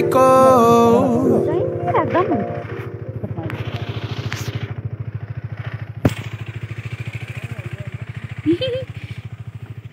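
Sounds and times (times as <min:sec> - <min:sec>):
motorcycle engine idling: 0:00.0 - 0:09.9.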